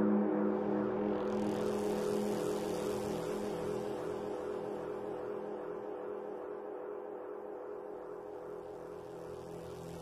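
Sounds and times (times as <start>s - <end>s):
low drone of held tones: 0.0s - 10.0s.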